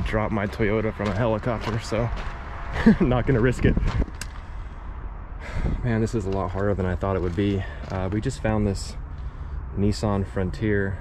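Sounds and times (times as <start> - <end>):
man talking: 0.0 - 2.2, 2.8 - 4.0, 5.4 - 9.1, 9.7 - 11.0
low outdoor background noise: 0.0 - 11.0.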